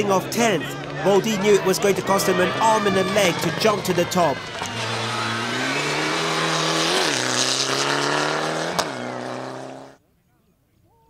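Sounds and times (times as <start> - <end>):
rally car engine at high revs: 4.4 - 10.0.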